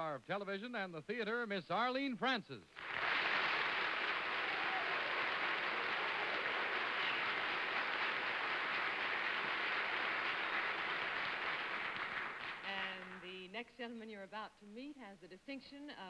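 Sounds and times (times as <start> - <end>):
audience applauding: 2.8 - 13.2.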